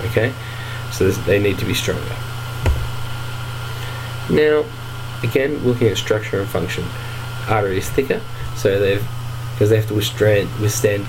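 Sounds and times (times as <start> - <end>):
low background hum: 0.0 - 11.0
soft thump: 2.6 - 3.3.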